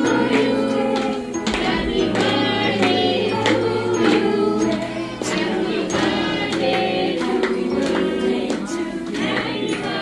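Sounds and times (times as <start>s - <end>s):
group of voices singing: 0.0s - 10.0s
hand claps in a beat: 0.0s - 10.0s
music: 0.0s - 10.0s.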